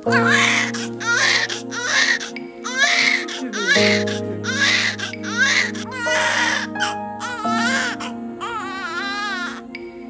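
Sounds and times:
newborn baby crying: 0.0 - 9.7
background music with sustained chords: 0.0 - 10.0.

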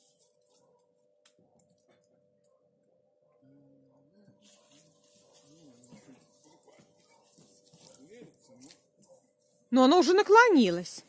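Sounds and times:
faint distant voices talking: 0.4 - 9.7.

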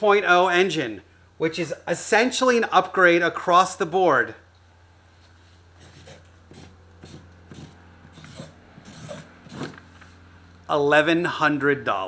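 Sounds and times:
steady low hum: 4.5 - 10.9
marker pen scratching on paper: 5.8 - 10.2.

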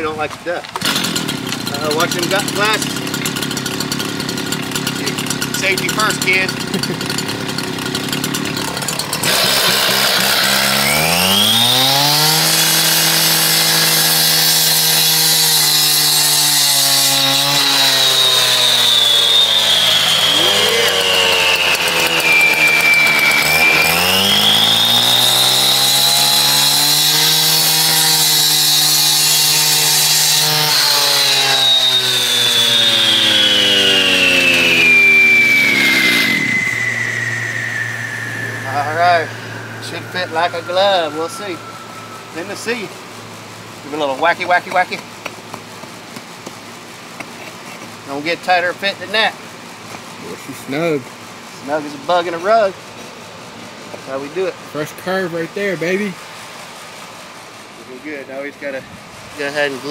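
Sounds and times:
cut-off saw cutting concrete: 0.0 - 43.0, 43.8 - 45.8, 48.0 - 49.4, 51.7 - 52.8, 54.1 - 56.2, 59.4 - 59.9.

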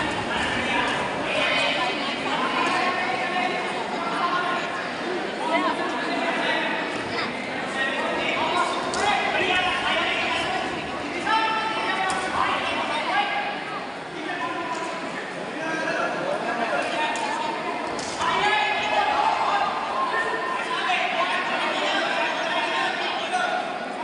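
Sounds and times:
people talking and calling out: 0.0 - 24.0.

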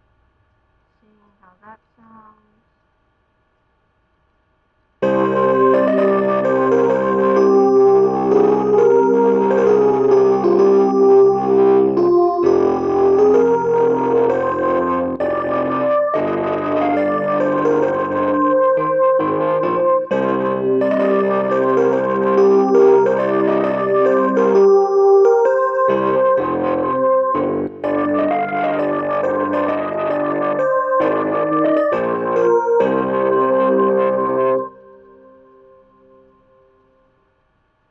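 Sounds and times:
synthesizer chords and melody: 5.0 - 36.6.

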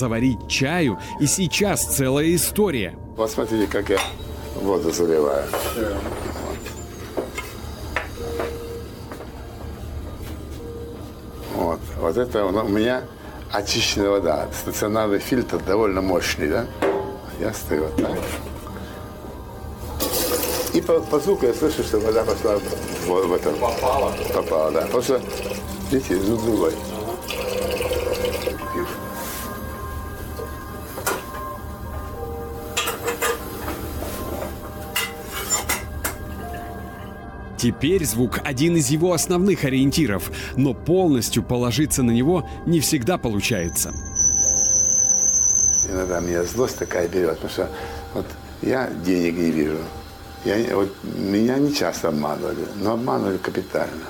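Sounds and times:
tap water filling metal kettle: 20.0 - 28.9.

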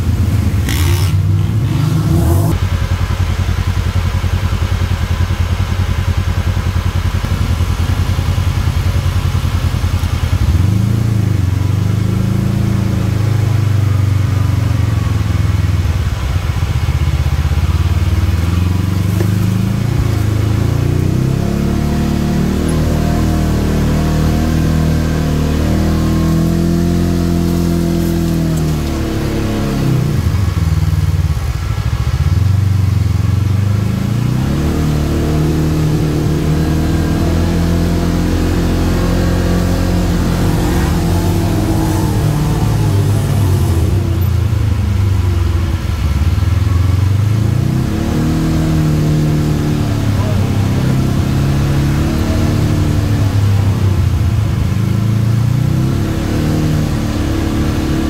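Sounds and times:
utility vehicle engine revving: 0.0 - 58.0.

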